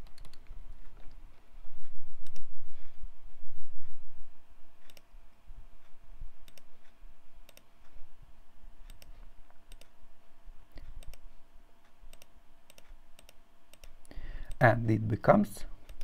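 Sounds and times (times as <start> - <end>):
computer mouse clicks: 0.0 - 1.2, 2.2 - 2.5, 4.8 - 5.1, 6.4 - 8.0, 8.8 - 10.0, 10.8 - 14.6
faint steady hum: 0.0 - 16.0.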